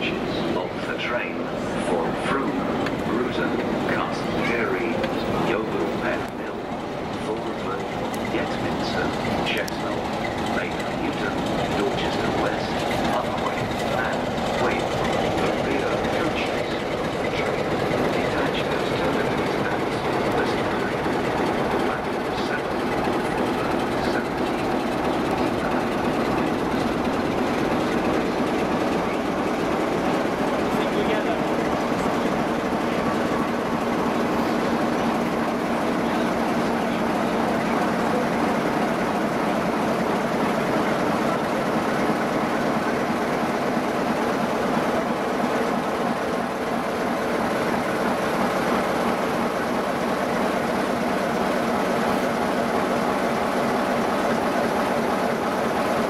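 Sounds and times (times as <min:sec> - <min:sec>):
diesel locomotive engine hum: 0:00.0 - 0:56.0
train coaches rumbling past: 0:00.0 - 0:56.0
wheels clacking over rail joints: 0:00.0 - 0:56.0.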